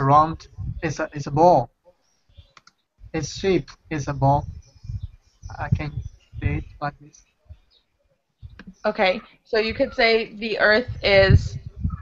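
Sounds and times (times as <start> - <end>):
person speaking: 0.0 - 1.7, 3.1 - 7.2, 8.5 - 12.0
woman speaking: 8.6 - 12.0.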